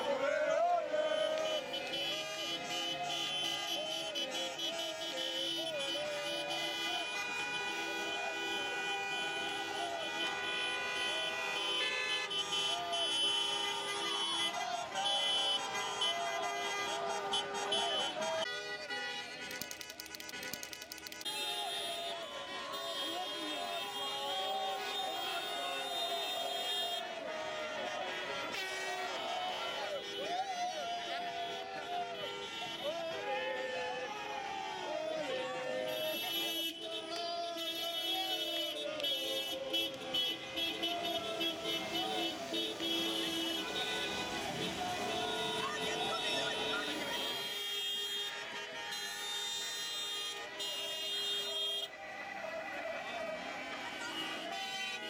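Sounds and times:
car horns honking: 0.0s - 52.0s, 53.3s - 55.0s
crowd shouting and cheering: 0.0s - 55.0s.

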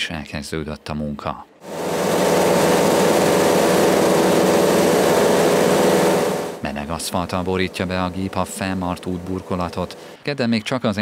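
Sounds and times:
asphalt paver running: 1.6s - 10.2s.

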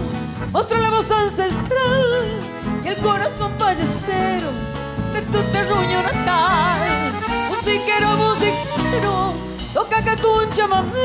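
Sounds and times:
accordion: 0.0s - 11.0s
woman singing: 0.5s - 11.0s
drum kit beat: 5.9s - 10.9s.

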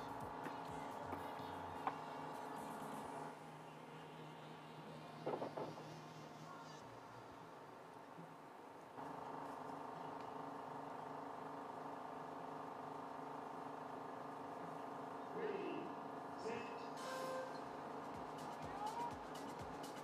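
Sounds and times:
background hum: 0.0s - 20.0s
start signal tone: 17.0s - 17.8s.

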